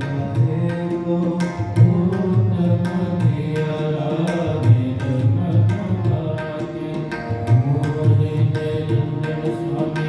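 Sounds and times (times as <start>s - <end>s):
harmonium chords: 0.0s - 10.0s
tabla drumming: 0.0s - 10.0s.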